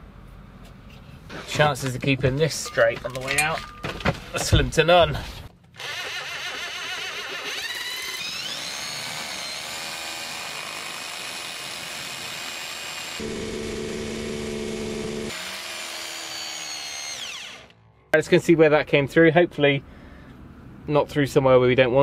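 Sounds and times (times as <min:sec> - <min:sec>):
deeper drill tone: 0:05.8 - 0:17.8
electric drill boring into stone: 0:05.8 - 0:17.8.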